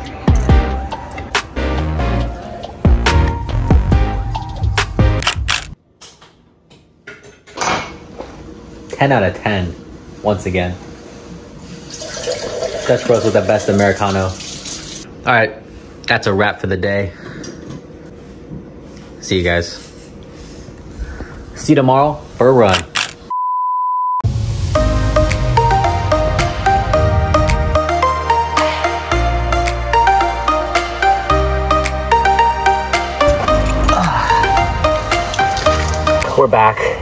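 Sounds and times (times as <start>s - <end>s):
background music: 0.0s - 5.8s, 24.2s - 37.0s
pure-tone test beep: 23.3s - 24.2s.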